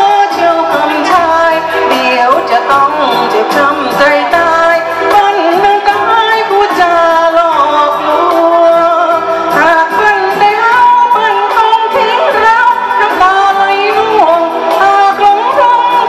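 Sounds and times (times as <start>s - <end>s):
live band with electric guitar: 0.0s - 16.0s
woman singing pop song: 0.0s - 16.0s.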